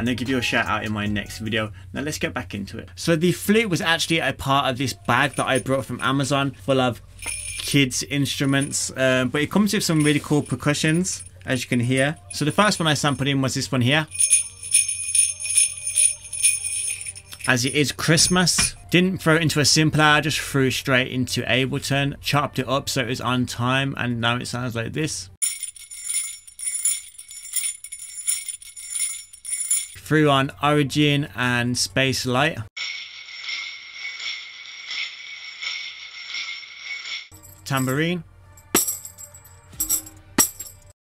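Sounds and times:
jingle bells shaken: 4.8s - 6.2s, 7.2s - 9.0s, 9.7s - 18.9s, 25.4s - 30.0s, 32.8s - 40.9s.

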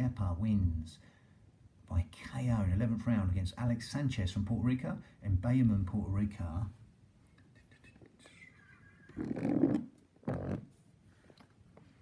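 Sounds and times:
man speaking softly: 7.4s - 8.6s.

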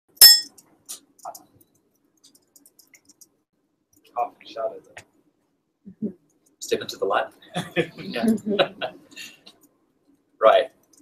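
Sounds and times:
sharp clink with ringing: 0.1s - 0.5s
faint clicks and knocks: 0.5s - 4.2s.

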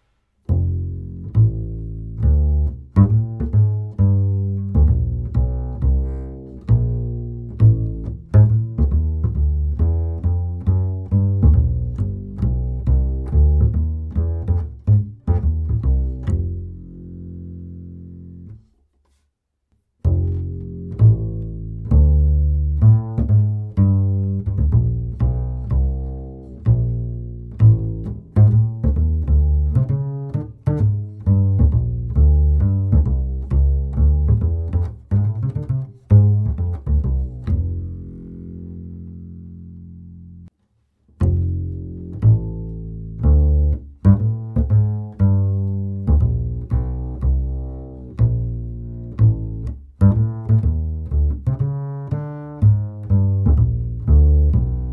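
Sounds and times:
plucked double bass walking line: 0.0s - 18.7s, 20.0s - 54.9s.

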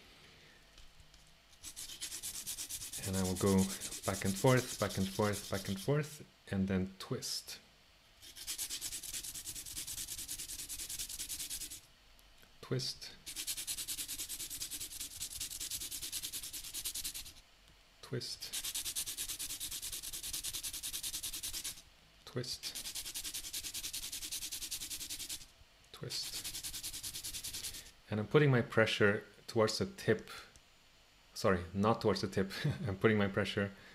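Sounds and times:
pencil scratching on sandpaper: 1.6s - 5.9s, 8.2s - 11.8s, 13.2s - 17.4s, 18.5s - 21.8s, 22.6s - 25.5s, 26.1s - 27.9s.

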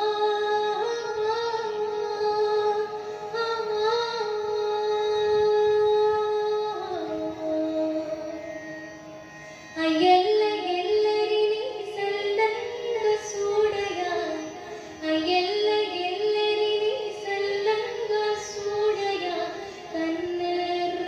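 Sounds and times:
woman singing slow melody: 0.0s - 8.2s, 15.0s - 21.0s.

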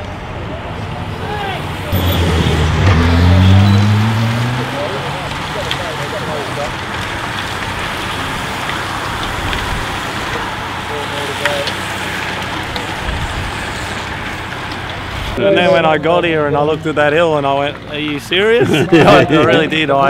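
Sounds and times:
racing bicycles rushing by: 0.0s - 20.0s
motorcycle accelerating past: 1.4s - 6.8s.

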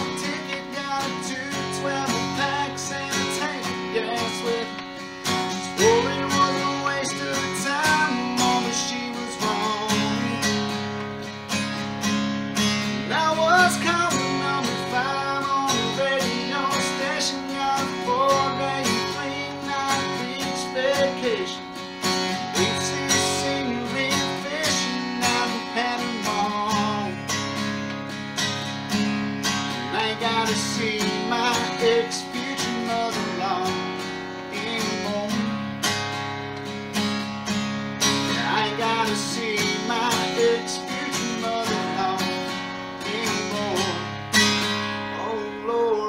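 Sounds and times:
man singing: 0.0s - 11.0s, 12.7s - 27.6s, 29.7s - 35.7s, 38.1s - 46.0s
acoustic guitar strumming: 0.0s - 46.0s.

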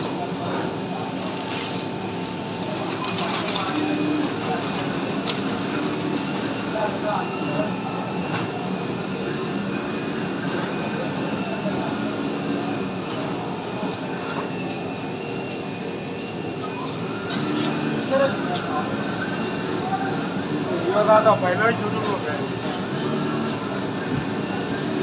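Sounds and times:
faint voices: 0.0s - 25.0s.

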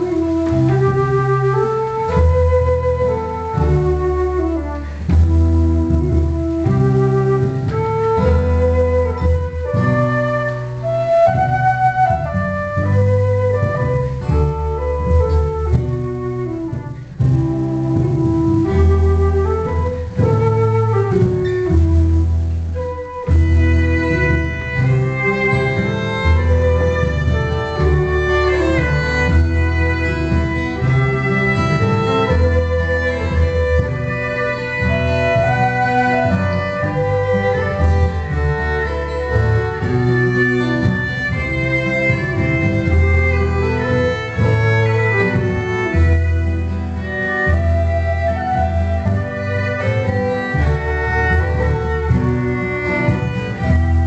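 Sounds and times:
fiddle: 0.0s - 54.0s
flute-like wind instrument: 0.0s - 54.0s
low accompaniment: 0.0s - 54.0s.

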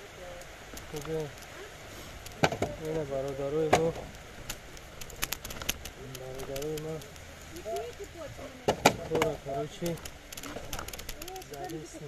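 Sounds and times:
sharp clicks: 2.2s - 8.1s, 8.9s - 11.8s.

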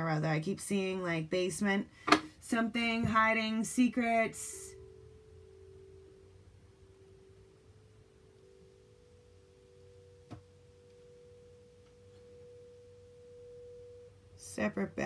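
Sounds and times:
low pure tone: 0.0s - 15.0s.

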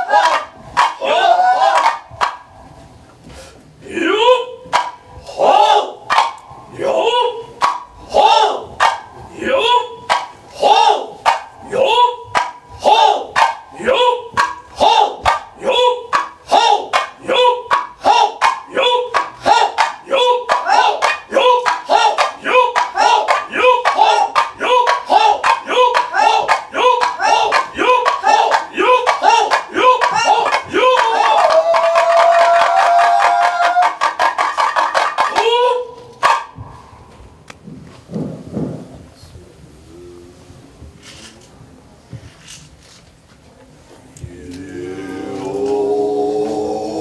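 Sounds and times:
small hand drums beating: 0.2s - 1.0s, 1.7s - 2.6s, 4.6s - 5.2s, 6.0s - 6.6s, 7.6s - 36.8s.

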